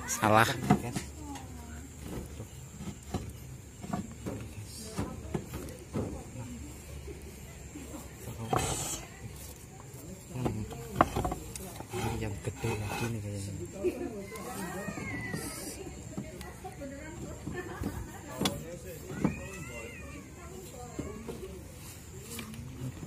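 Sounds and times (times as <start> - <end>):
clay tiles clinking and knocking: 10.4 - 13.1
tiles scraping: 10.7 - 13.3.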